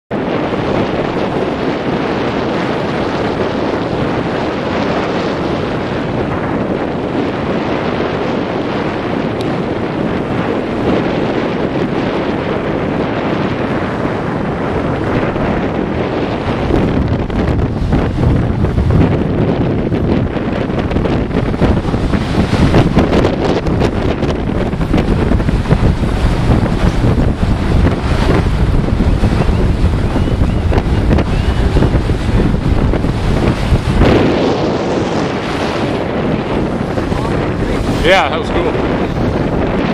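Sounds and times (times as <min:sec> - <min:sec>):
sea water rushing around boat: 0:00.1 - 0:39.9
wind buffeting microphone: 0:00.1 - 0:39.9.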